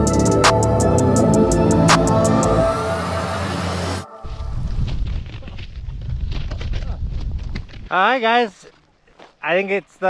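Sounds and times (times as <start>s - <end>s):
music track: 0.0s - 4.6s
wind buffeting microphone: 4.2s - 7.9s.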